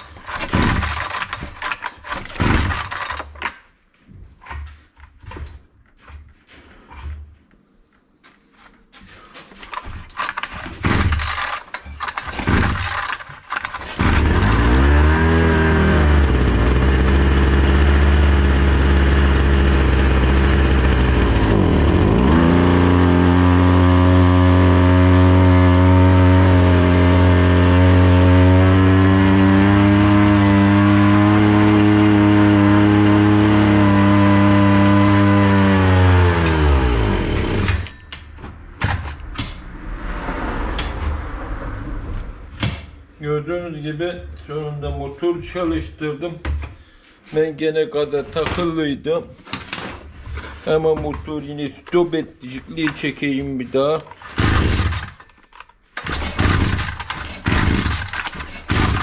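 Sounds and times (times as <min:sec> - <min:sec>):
brush cutter engine running: 0:00.0 - 0:03.4, 0:09.7 - 0:37.9, 0:54.2 - 0:55.2, 0:56.0 - 0:59.0
starter cord pulls: 0:00.0 - 0:03.6, 0:09.6 - 0:23.6, 0:36.1 - 0:38.1, 0:54.0 - 0:59.0.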